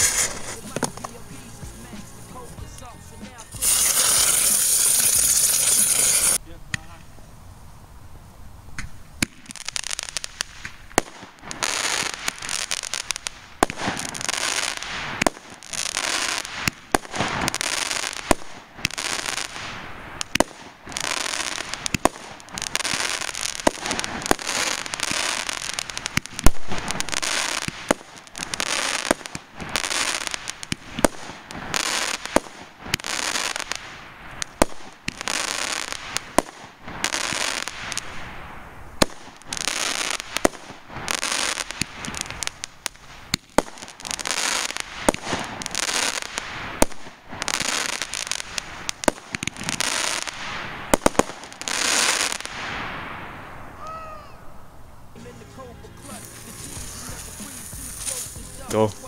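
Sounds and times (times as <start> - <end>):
fireworks bangs and pops: 0.0 - 7.3, 8.7 - 53.9, 56.0 - 59.0
fireworks hissing bursts: 0.0 - 8.0, 8.6 - 59.0.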